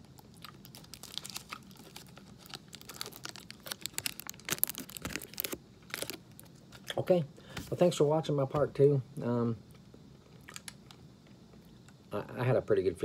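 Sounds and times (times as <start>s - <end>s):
candy wrapper crinkling: 0.0s - 6.6s.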